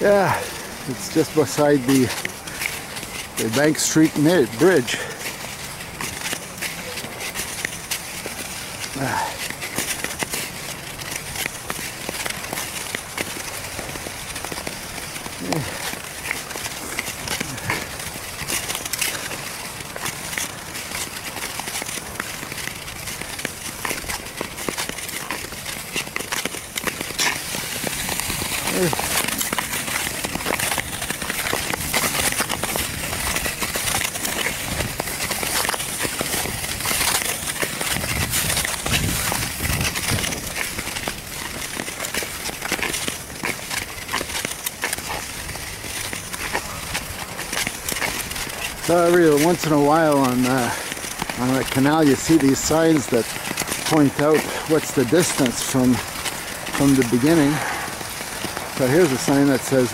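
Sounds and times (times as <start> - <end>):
skate blades scraping on ice: 0.0 - 59.9.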